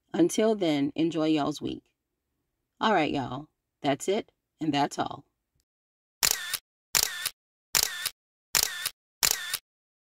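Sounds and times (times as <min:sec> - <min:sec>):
short clicks: 0:06.2 - 0:09.6.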